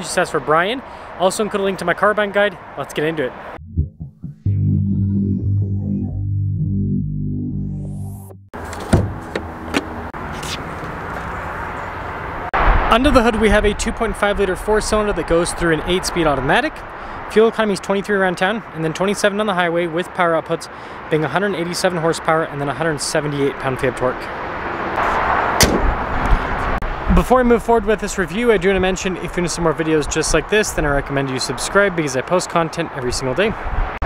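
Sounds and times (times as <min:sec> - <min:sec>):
low rumbling thuds: 0:03.6 - 0:05.8, 0:25.6 - 0:26.9
outdoor background noise: 0:08.6 - 0:34.0
car hood latch clicks: 0:08.7 - 0:09.9, 0:25.6 - 0:26.0.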